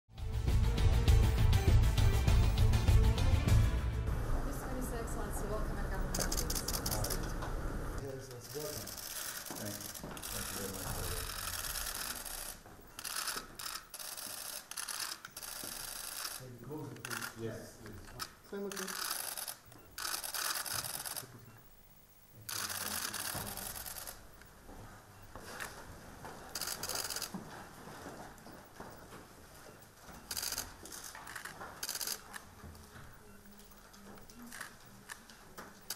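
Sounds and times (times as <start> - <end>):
people talking: 4.5 - 7.4, 9.6 - 11.3
camera shutters clicking: 6.1 - 7.4, 18.0 - 21.3, 26.6 - 27.3, 30.3 - 32.5.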